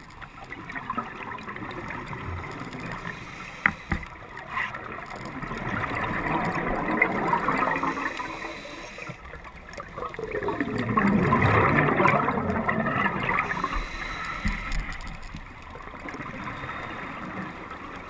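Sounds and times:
underwater breath bubbling: 0.6 - 15.3.

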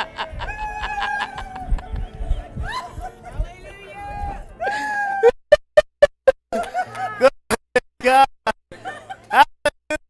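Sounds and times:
person laughing: 0.0 - 2.0, 4.6 - 10.0.

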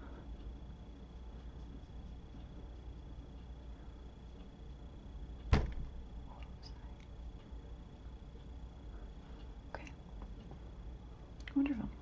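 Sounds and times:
faint steady hum: 0.0 - 12.0
sharp knock: 5.5 - 5.9.

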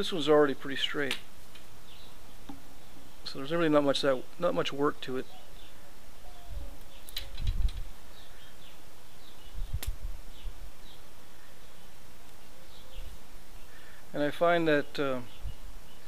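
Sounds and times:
faint bird chirps: 5.2 - 16.0.

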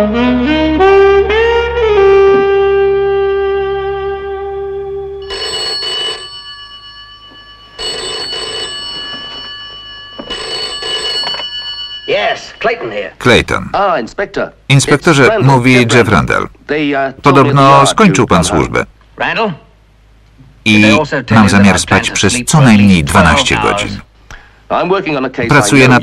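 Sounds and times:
saxophone music sting: 0.0 - 5.2
telephone bell ringing: 5.2 - 13.2.

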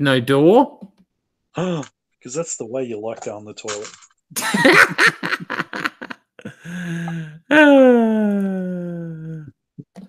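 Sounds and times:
man laughing: 4.4 - 7.1.

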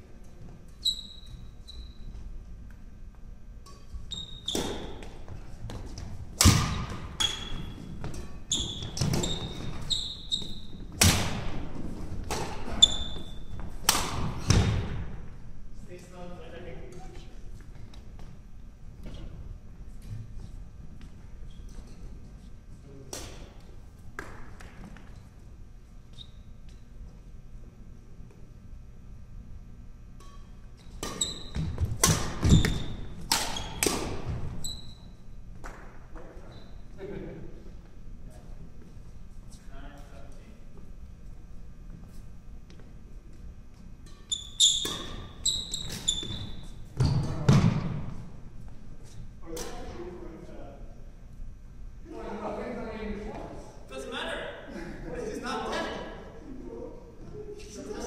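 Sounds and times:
racket hitting shuttlecock: 4.5 - 5.1, 6.4 - 7.2, 13.8 - 14.6, 31.0 - 34.3, 44.0 - 46.1
shoes squeaking on wooden floor: 7.1 - 10.9, 12.7 - 13.6, 44.3 - 47.4.

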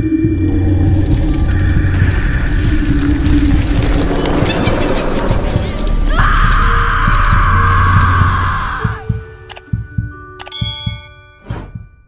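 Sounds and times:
low rumble: 0.0 - 9.2.

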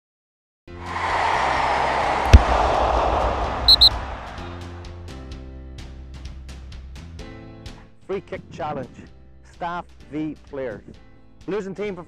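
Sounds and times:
rush of noise with low rumble: 1.6 - 4.8
quick high beeps: 3.7 - 3.9.

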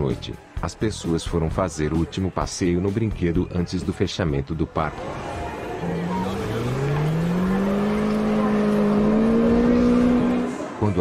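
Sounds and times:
ride motor hum rising in pitch: 5.8 - 10.6.

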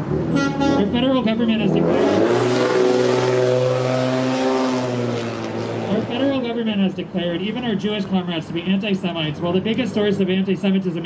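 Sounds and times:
truck engine passing: 0.0 - 10.2.

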